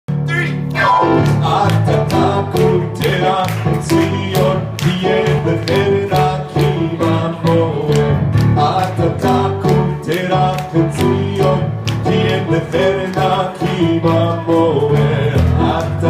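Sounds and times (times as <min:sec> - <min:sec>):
digital piano chords: 0:00.1 - 0:16.0
man singing: 0:00.3 - 0:16.0.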